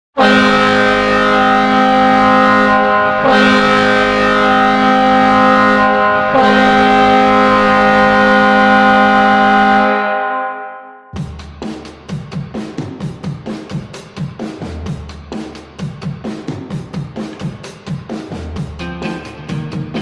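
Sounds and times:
goal horn blasts: 0.2s - 11.2s.

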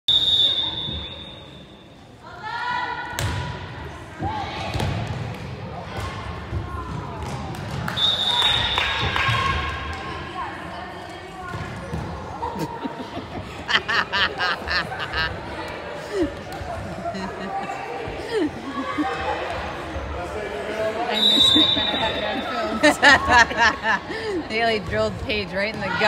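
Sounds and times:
referee's whistle: 0.1s - 1.9s, 7.9s - 9.0s, 21.1s - 22.5s.

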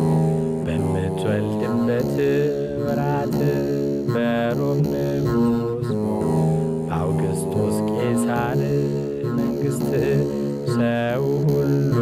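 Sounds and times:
man singing slow chant: 0.0s - 6.3s, 6.9s - 12.0s.

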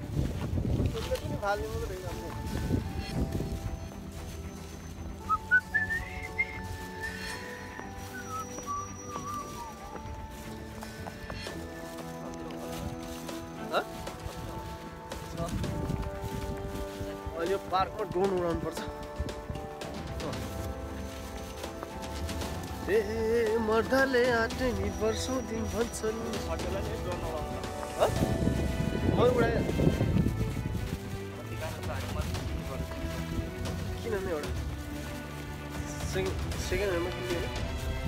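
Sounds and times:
wind rumble on microphone: 0.0s - 7.4s, 14.0s - 21.2s, 26.3s - 35.2s
faint background music: 0.0s - 38.0s
man whistling a tune: 4.7s - 10.3s.

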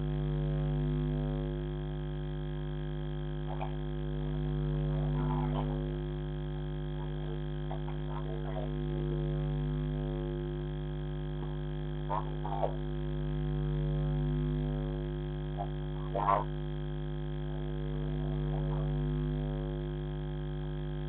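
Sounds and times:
electrical hum: 0.0s - 21.0s.

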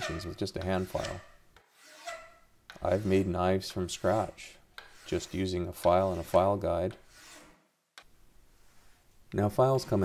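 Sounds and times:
hand file rasping on metal: 0.0s - 7.6s, 9.6s - 10.0s.

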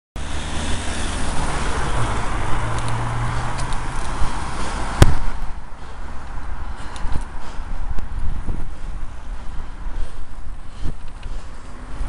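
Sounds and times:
car passing close: 0.2s - 10.0s
traffic on a wet road: 0.2s - 12.0s
wind on microphone: 7.1s - 11.2s.

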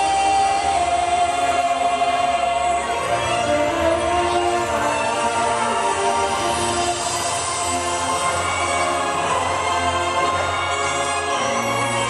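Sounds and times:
choir holding long note: 0.0s - 12.0s
orchestral backing: 0.0s - 12.0s.

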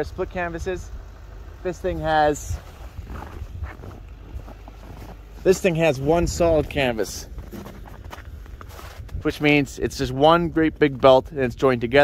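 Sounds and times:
wind rumble on microphone: 0.0s - 12.0s
footsteps crunching on snow: 0.9s - 11.5s.

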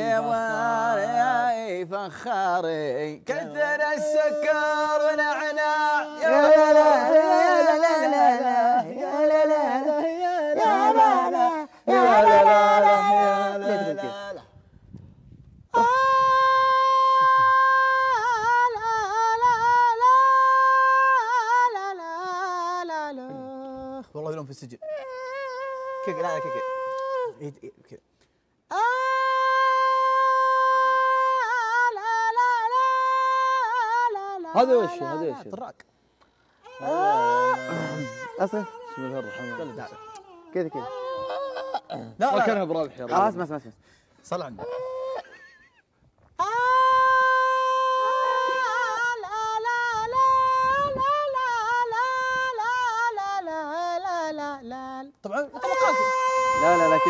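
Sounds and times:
man singing long high note: 0.0s - 1.8s, 3.3s - 14.5s, 15.8s - 24.0s, 28.7s - 35.4s, 36.6s - 42.6s, 46.4s - 57.0s.

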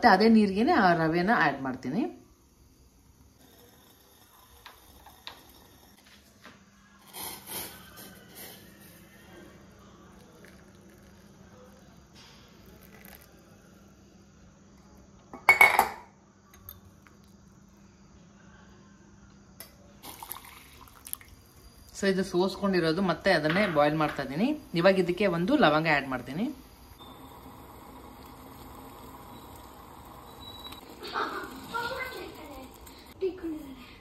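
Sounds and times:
liquid pouring through strainer: 10.0s - 13.4s, 27.0s - 33.2s.

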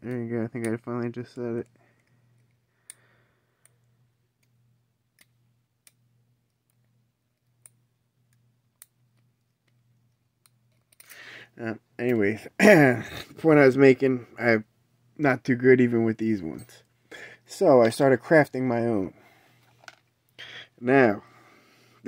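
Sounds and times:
faint steady hum: 0.0s - 22.0s
lock pick metal clicks: 5.2s - 11.1s.

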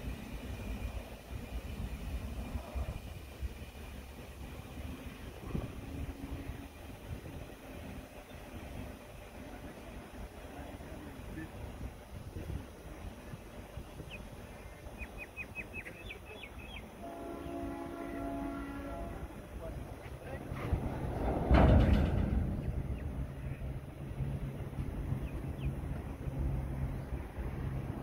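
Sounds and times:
freight train hum: 0.0s - 28.0s
bird chirps: 13.9s - 16.9s
train horn: 17.0s - 19.4s.

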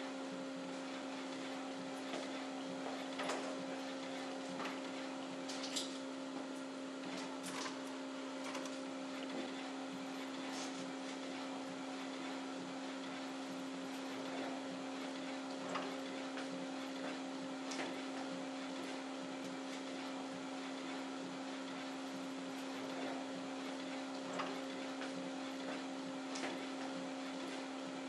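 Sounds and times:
label printer humming: 0.0s - 28.0s
faint printer clicks: 2.1s - 5.8s, 15.2s - 19.8s, 23.8s - 27.6s.

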